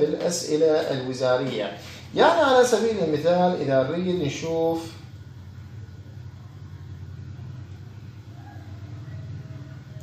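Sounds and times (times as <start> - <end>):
low-pitched hum: 4.0 - 10.0.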